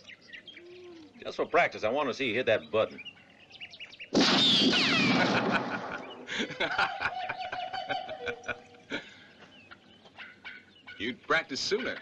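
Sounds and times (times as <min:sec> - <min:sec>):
ricochet whine: 0:04.1 - 0:06.3
pistol shot: 0:04.2 - 0:06.2.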